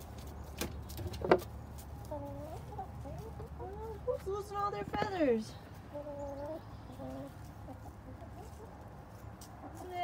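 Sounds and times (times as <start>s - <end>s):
hens clucking: 0.0s - 10.0s.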